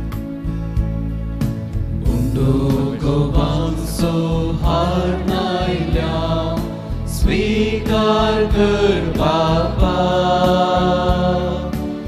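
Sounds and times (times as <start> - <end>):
instrumental accompaniment: 0.0 - 12.0
hymn singing: 2.0 - 12.0.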